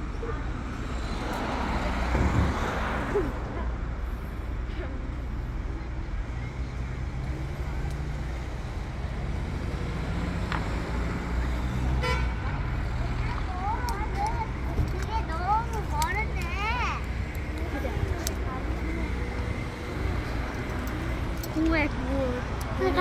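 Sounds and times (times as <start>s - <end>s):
car engines rumbling: 0.0s - 23.0s.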